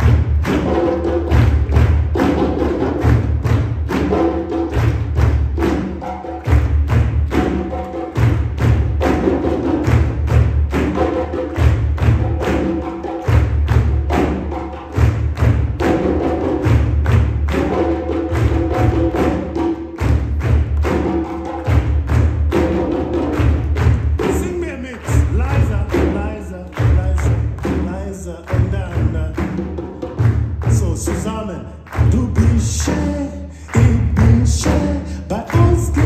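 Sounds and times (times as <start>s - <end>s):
deep bass drum thumps: 0.0s - 4.0s
hand drums playing fast rhythm: 0.0s - 36.0s
person's voice over drumming: 24.2s - 29.8s, 30.6s - 36.0s.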